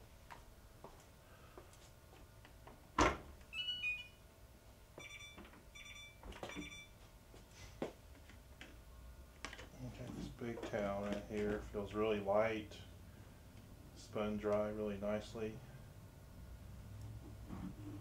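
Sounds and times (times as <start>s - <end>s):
short electronic beeps: 3.5s - 4.2s, 5.0s - 7.0s.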